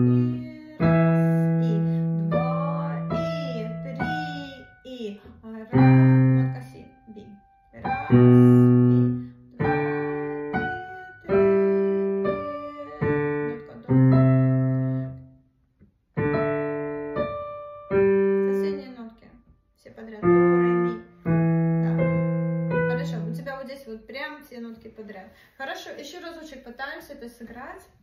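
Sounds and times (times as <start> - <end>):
digital piano playing: 0.0 - 5.0, 5.7 - 15.3, 16.2 - 19.0, 20.2 - 23.5.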